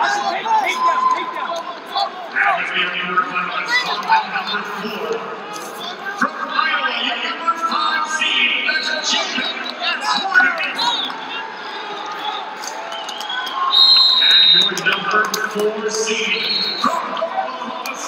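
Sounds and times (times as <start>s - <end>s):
voices calling out in arena: 0.0s - 18.0s.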